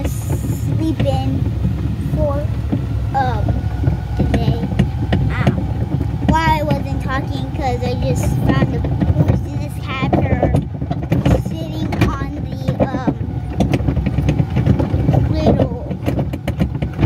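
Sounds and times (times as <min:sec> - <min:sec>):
knocks and clatters: 0:00.0 - 0:17.0
plastic cars rumbling and rattling: 0:00.0 - 0:17.0
voices: 0:00.0 - 0:17.0.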